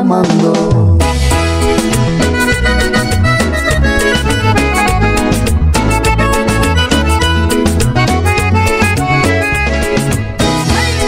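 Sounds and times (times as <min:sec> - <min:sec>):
accordion-led dance music: 0:00.0 - 0:11.0.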